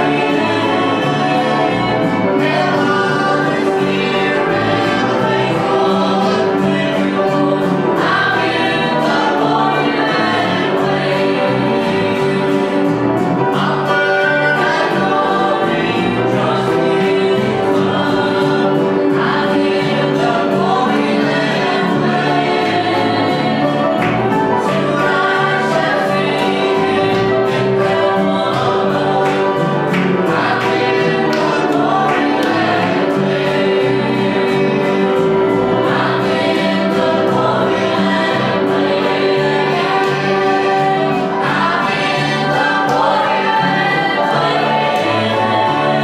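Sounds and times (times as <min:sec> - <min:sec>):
congregation singing a hymn: 0:00.0 - 0:46.0
instrumental accompaniment: 0:00.0 - 0:46.0.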